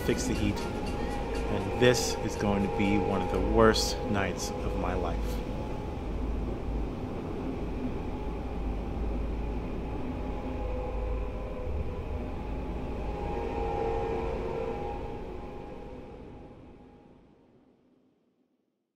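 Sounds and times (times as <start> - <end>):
steady low rumble: 0.0 - 17.9
faint sustained tones: 0.0 - 18.2.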